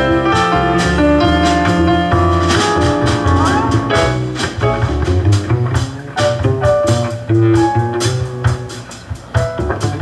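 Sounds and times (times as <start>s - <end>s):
drum kit cymbals: 0.0s - 10.0s
upright bass plucking: 0.0s - 10.0s.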